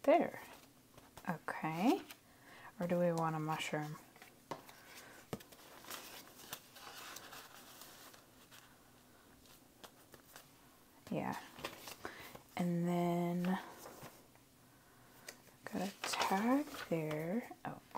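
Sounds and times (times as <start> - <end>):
paper cards rustling: 3.0 - 8.8, 9.4 - 12.5, 13.3 - 14.3, 15.2 - 17.5.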